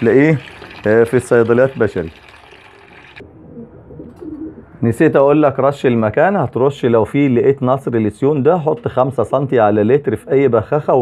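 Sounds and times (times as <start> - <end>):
pigeon cooing: 3.2 - 4.7.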